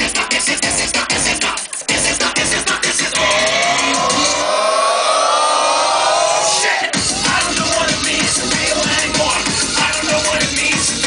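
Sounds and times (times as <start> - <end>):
electronic music beat: 0.0 - 4.6, 6.1 - 11.0.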